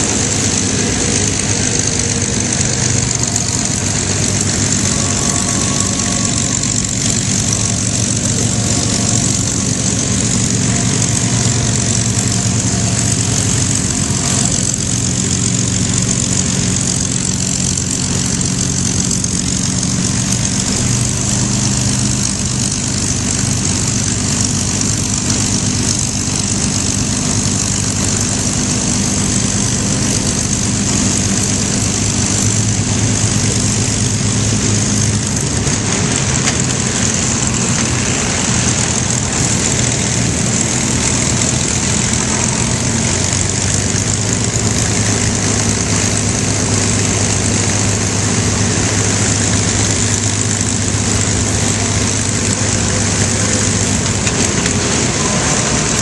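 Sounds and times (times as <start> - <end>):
propeller aircraft engines idling: 0.0 - 56.0.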